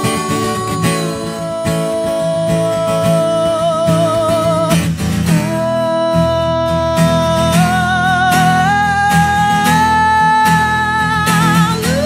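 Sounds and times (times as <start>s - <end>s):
strummed acoustic guitar: 0.0s - 12.0s
woman singing: 0.0s - 12.0s.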